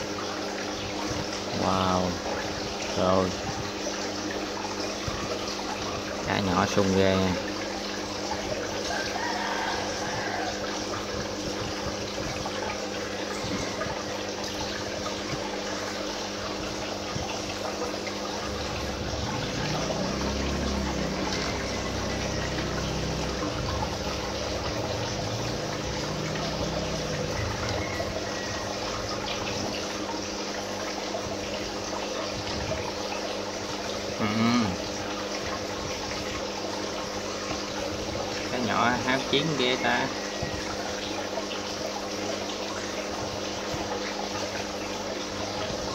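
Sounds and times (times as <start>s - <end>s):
aquarium pump humming: 0.0s - 45.9s
water splashing and trickling: 0.0s - 45.9s.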